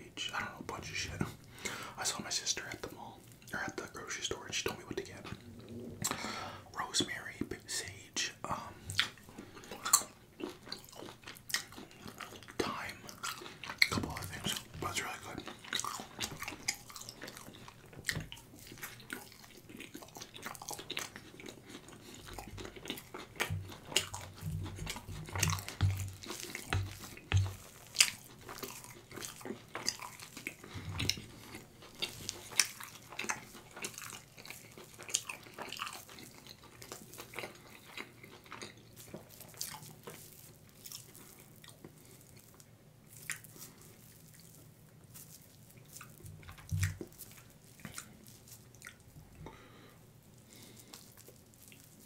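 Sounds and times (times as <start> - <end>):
wet chewing and mouth sounds: 0.1 - 52.0
dull low thuds: 24.4 - 26.2.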